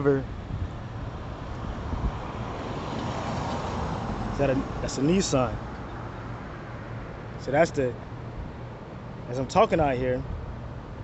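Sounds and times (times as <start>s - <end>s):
car approaching on road: 0.3s - 11.0s.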